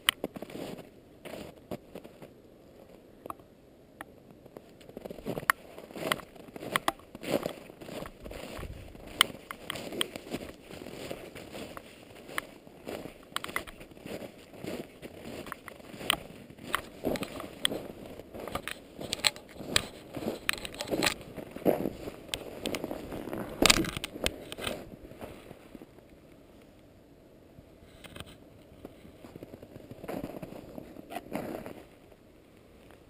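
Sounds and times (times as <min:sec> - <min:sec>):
footsteps crunching in snow: 0:00.2 - 0:03.0, 0:04.4 - 0:26.0, 0:28.8 - 0:32.1.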